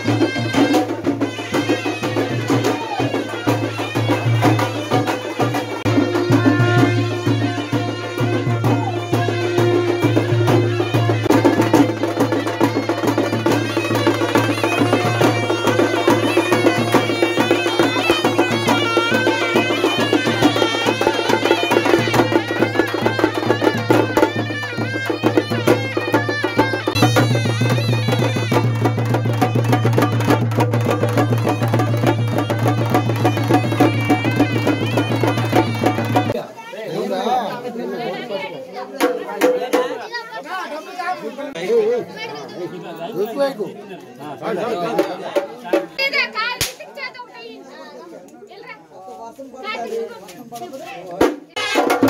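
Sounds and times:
busy drumming: 0.0s - 47.5s, 49.6s - 52.0s
voices chattering: 0.0s - 52.0s.

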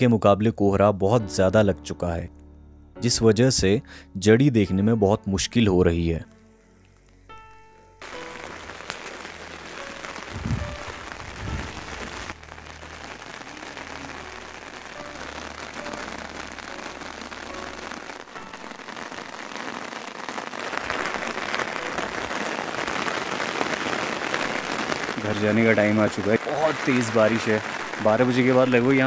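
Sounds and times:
heavy rain falling: 8.0s - 29.0s
low thumps: 10.3s - 12.2s.

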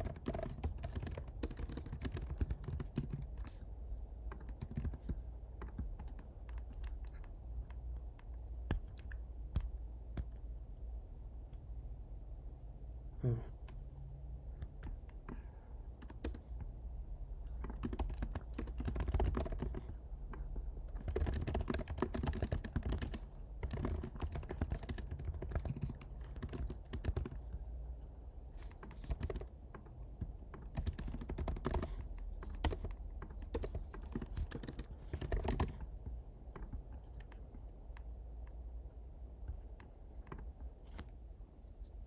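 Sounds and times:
keyboard typing: 0.0s - 10.6s, 14.5s - 16.7s, 17.3s - 27.9s, 28.5s - 38.6s, 39.5s - 41.1s
low steady hum: 0.0s - 42.0s.

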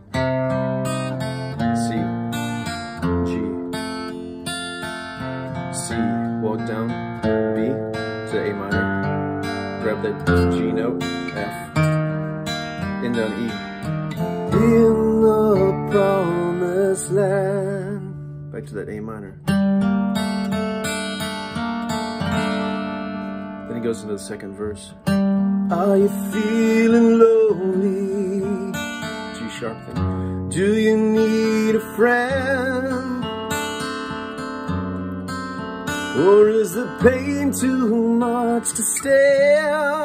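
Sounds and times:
acoustic guitar strummed chords: 0.0s - 40.0s
person speaking: 1.6s - 2.2s, 3.1s - 3.7s, 5.8s - 9.0s, 9.7s - 12.0s, 12.9s - 13.7s, 14.5s - 19.4s.

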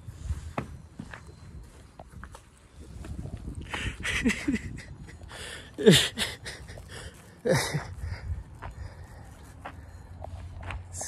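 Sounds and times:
man laughing: 3.7s - 8.2s
footsteps: 6.6s - 11.0s.

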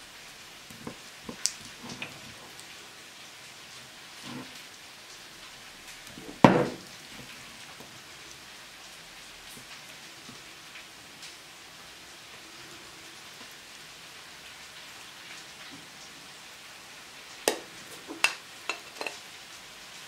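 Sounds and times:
steady hiss: 0.0s - 20.0s
loud knock: 6.4s - 6.8s
plastic server scraping ceramic dish: 17.9s - 19.2s.

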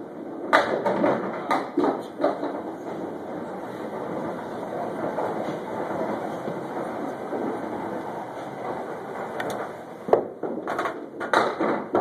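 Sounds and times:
ball rolling on return track: 0.0s - 12.0s.

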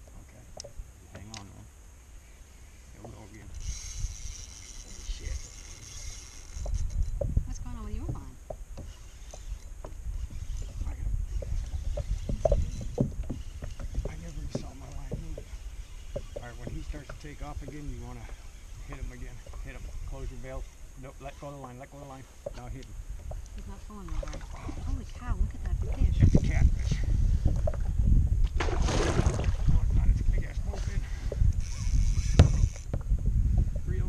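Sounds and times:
low uneven rumble: 0.0s - 34.0s.

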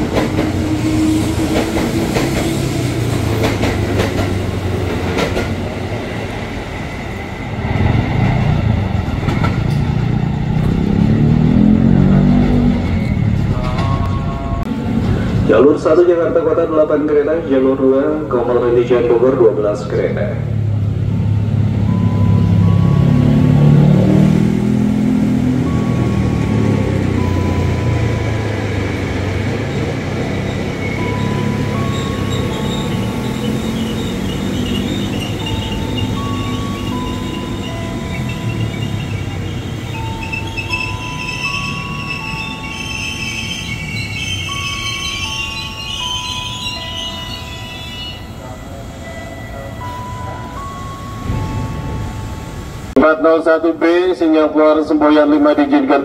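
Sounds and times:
electric train rumbling: 0.0s - 56.0s.

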